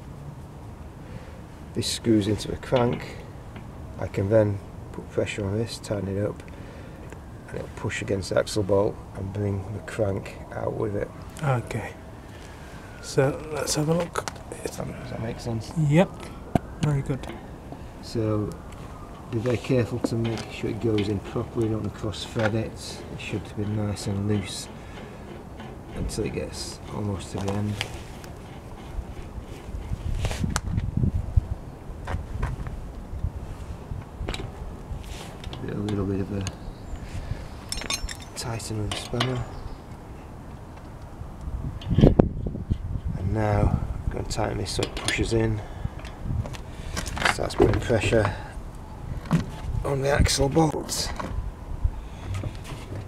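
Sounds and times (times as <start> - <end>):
faint clicks and scrapes: 18.7 - 30.9.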